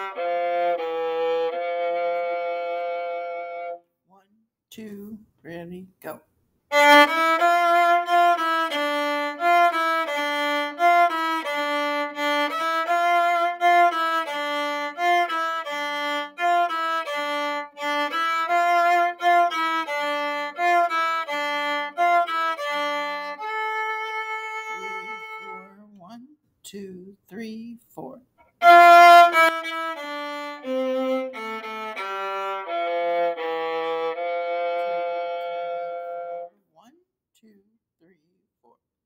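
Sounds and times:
solo viola bowed: 0:00.0 - 0:03.8, 0:06.7 - 0:25.8, 0:28.6 - 0:36.5.

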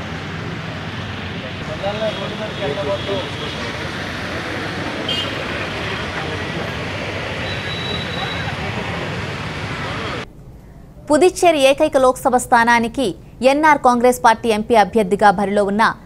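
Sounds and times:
traffic noise: 0:00.0 - 0:11.0
people talking: 0:01.4 - 0:10.3, 0:11.1 - 0:16.0.

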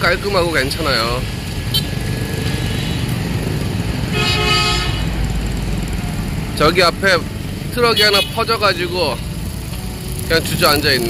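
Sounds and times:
road traffic: 0:00.0 - 0:11.0
vehicle horn: 0:04.1 - 0:05.2, 0:07.8 - 0:09.2.

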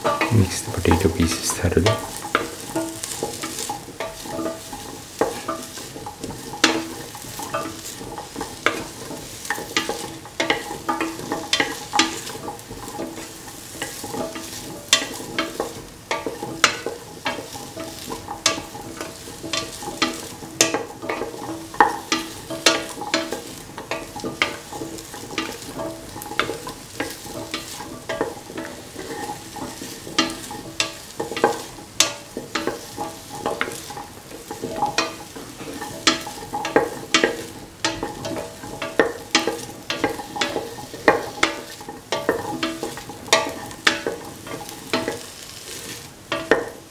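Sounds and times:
light sizzle: 0:00.0 - 0:46.9.

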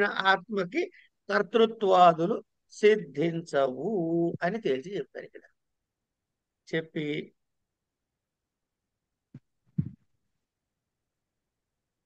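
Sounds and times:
soft low thumps: 0:09.4 - 0:10.1.

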